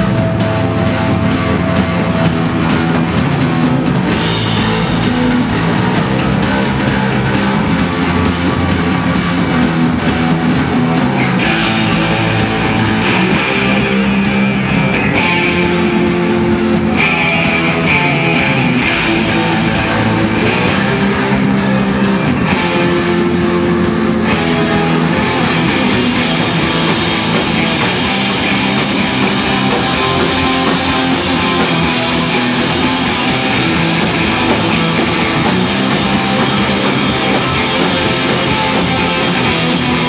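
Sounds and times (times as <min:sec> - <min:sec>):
bass guitar: 0:00.0 - 0:40.0
drum kit with cymbals: 0:00.0 - 0:40.0
electric guitars: 0:00.0 - 0:40.0.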